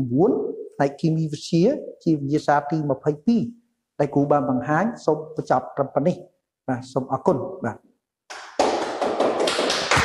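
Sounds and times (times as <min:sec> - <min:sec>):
crowd clapping: 0:08.3 - 0:10.0.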